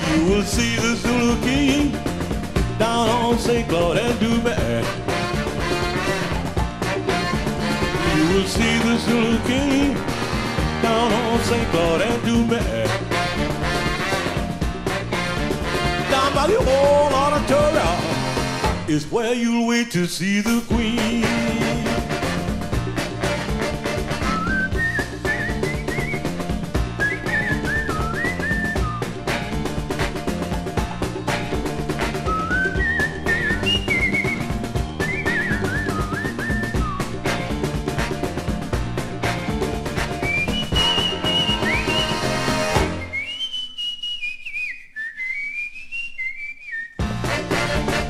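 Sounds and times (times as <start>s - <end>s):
rhythm and blues band: 0.0s - 19.1s, 20.3s - 43.3s, 47.0s - 48.0s
whistled melody: 24.1s - 29.5s, 32.0s - 37.5s, 40.0s - 47.7s.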